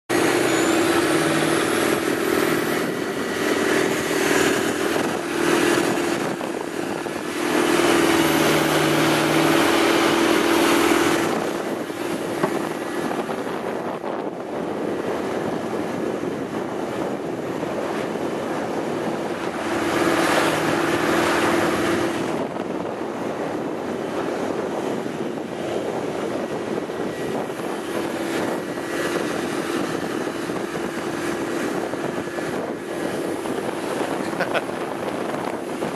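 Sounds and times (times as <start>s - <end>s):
boat engine running: 0.1s - 35.9s
rush of wind and water: 0.1s - 35.9s.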